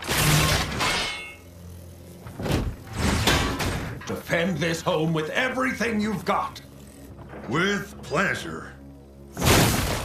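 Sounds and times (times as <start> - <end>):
mechanical clanks: 2.2 - 4.4.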